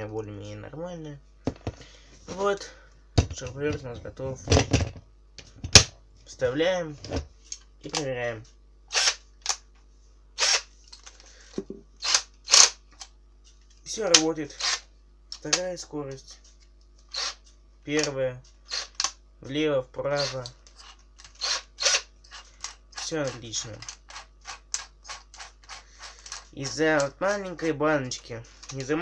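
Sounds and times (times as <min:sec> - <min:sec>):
cordless drill whirring: 0:08.9 - 0:09.2, 0:10.4 - 0:10.7, 0:14.6 - 0:14.9, 0:17.1 - 0:17.4, 0:18.7 - 0:19.1, 0:20.2 - 0:26.7.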